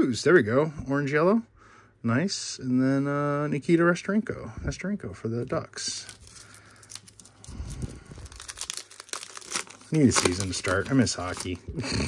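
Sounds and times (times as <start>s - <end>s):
foil wrapper tearing and crinkling: 6.0s - 11.7s.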